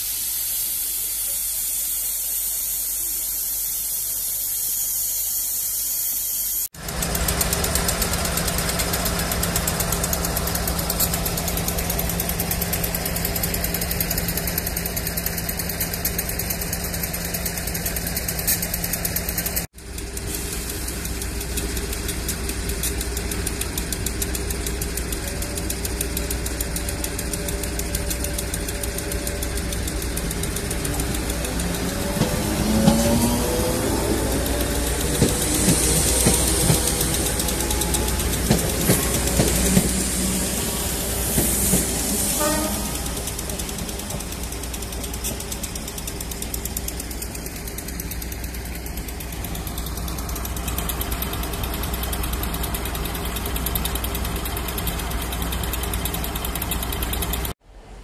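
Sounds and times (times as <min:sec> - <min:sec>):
electric train motors: 0:00.0 - 0:57.6
diesel locomotive engine humming: 0:06.7 - 0:58.0
wheels clicking on rail: 0:06.8 - 0:57.6.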